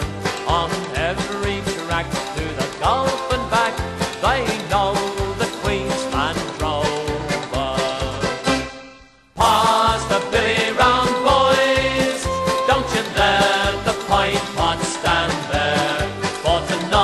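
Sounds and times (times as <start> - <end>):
band playing country folk song: 0.0 - 17.0.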